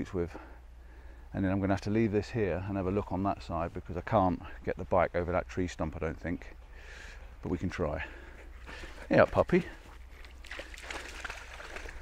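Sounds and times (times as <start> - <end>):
dog swimming in water: 6.4 - 12.0.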